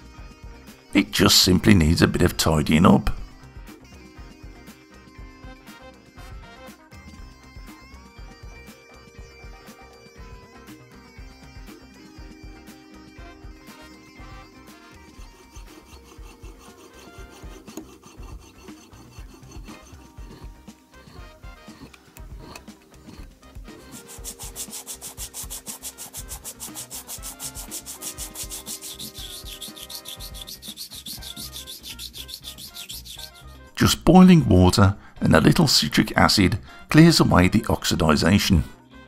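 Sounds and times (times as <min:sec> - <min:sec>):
metal file rasping on silver: 0:14.6 - 0:33.8.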